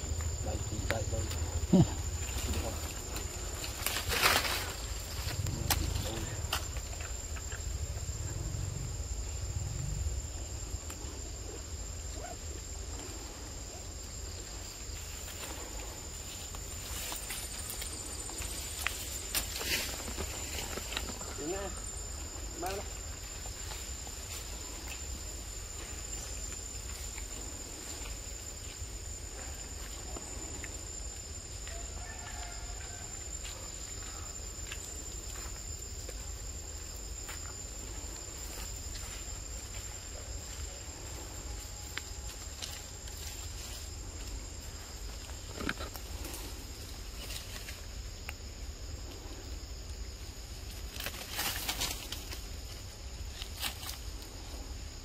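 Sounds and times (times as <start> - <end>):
low rumble: 0.0 - 3.9, 4.5 - 11.9
high-pitched insect drone: 0.0 - 55.0.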